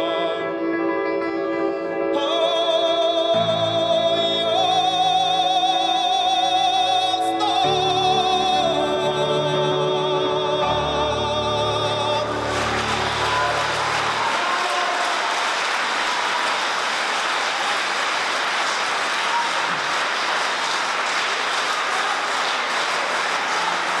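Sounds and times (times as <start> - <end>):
audience applauding: 11.9 - 24.0.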